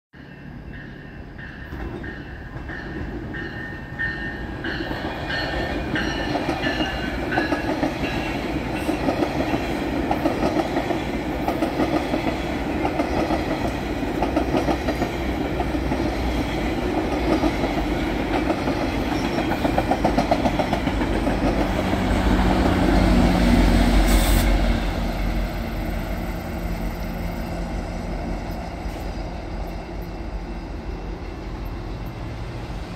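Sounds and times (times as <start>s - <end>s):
low diesel locomotive drone: 0.2s - 32.9s
train wheels clattering on rails: 0.7s - 24.0s.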